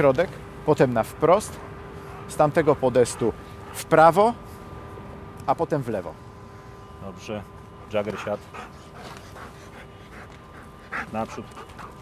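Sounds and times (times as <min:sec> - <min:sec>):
dog panting: 0:02.1 - 0:04.1, 0:07.8 - 0:12.0.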